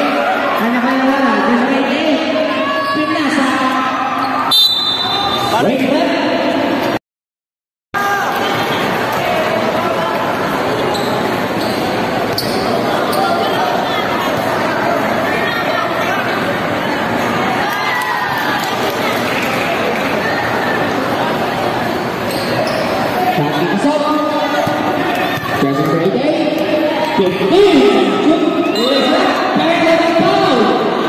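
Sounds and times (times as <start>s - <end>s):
chatter of many voices: 8.0s - 31.0s.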